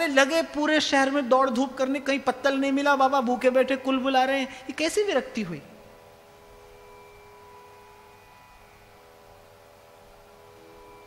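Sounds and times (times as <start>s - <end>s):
drone of held tones: 5.8s - 11.0s.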